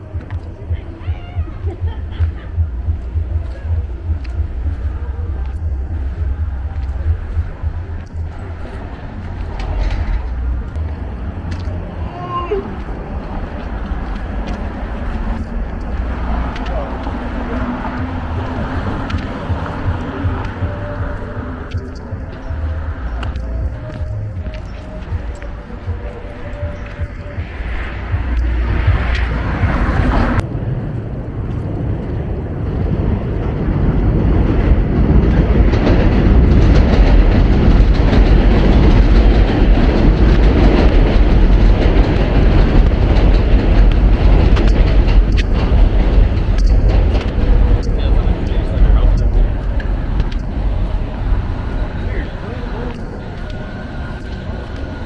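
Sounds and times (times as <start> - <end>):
indistinct voices: 0.0 - 30.8, 32.2 - 55.0
low rumble of passing cars: 0.0 - 55.0.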